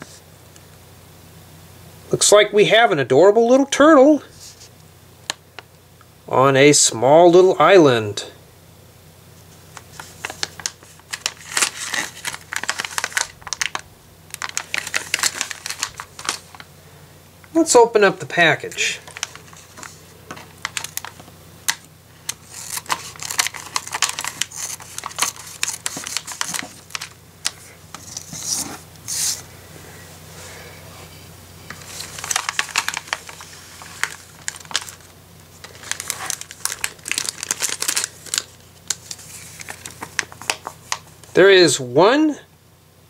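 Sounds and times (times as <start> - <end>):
plastic bag crinkling: 9.7 - 16.7, 18.6 - 29.4, 31.7 - 41.4.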